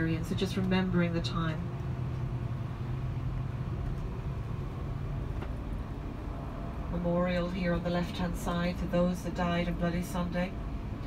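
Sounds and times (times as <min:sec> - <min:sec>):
bus engine hum: 0:00.0 - 0:11.0
road noise: 0:00.0 - 0:11.0.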